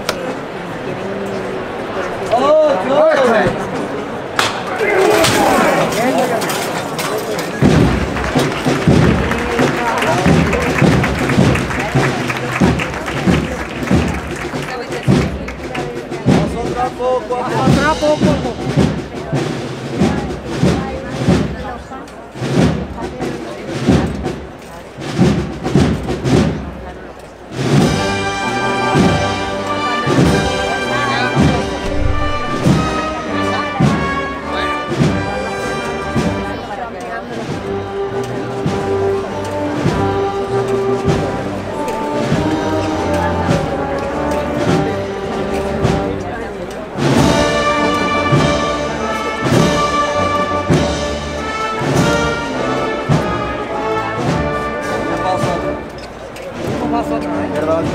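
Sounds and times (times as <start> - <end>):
drums beating a march: 3.2 - 57.9
brass playing slow march: 7.6 - 15.8, 27.6 - 36.7, 37.4 - 56.0.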